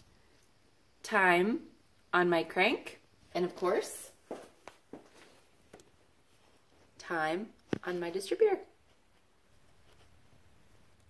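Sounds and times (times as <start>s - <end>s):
shuffling: 3.3s - 7.0s.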